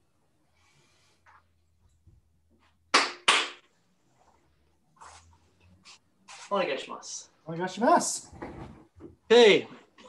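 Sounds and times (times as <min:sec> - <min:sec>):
sharp hand claps: 0:02.9 - 0:03.7.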